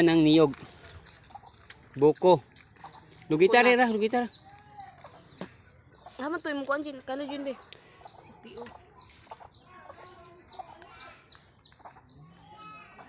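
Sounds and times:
chickens clucking: 0:00.0 - 0:13.0.

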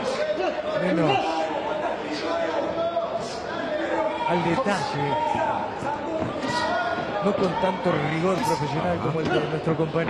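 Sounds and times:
arena crowd noise: 0:00.0 - 0:10.0
boxing commentary: 0:00.0 - 0:10.0.

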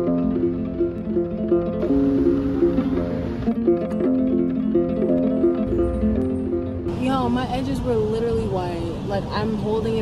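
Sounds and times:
plucked acoustic string music: 0:00.0 - 0:09.6
woman talking: 0:06.9 - 0:10.0.

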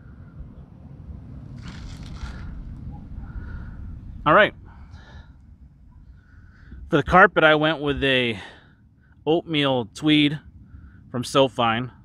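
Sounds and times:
low background rumble: 0:00.0 - 0:12.0
rustling scrape: 0:01.5 - 0:02.7.

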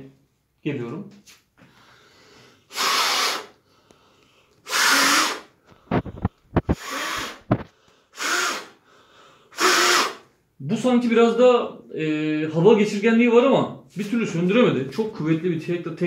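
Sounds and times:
breath blown through face mask: 0:01.7 - 0:06.0, 0:06.6 - 0:10.3.

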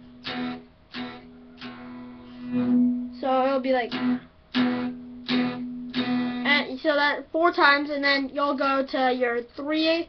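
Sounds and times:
picked electric guitar notes: 0:00.0 - 0:06.6.

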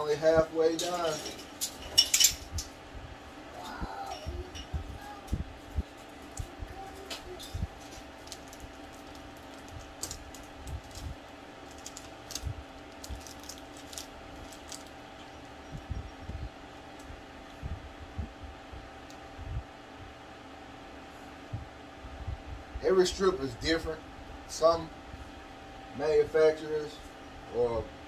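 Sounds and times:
steady hum: 0:00.0 - 0:28.0
soft low thumps: 0:15.6 - 0:20.2.

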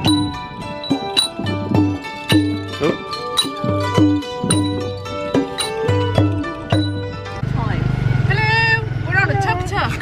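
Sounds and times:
plucked-string music: 0:00.0 - 0:07.8
motorcycle engine running: 0:05.9 - 0:10.0.

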